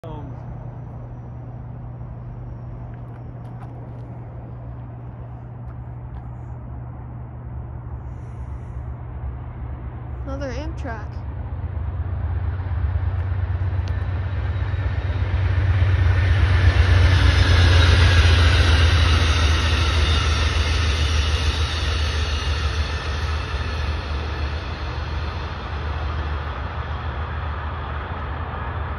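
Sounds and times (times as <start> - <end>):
train passing at speed: 0.0 - 28.9.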